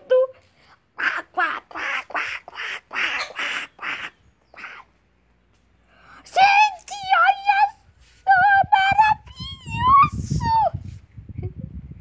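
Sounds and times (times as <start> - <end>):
raspy duck-like quacking squawks: 1.0 - 4.9.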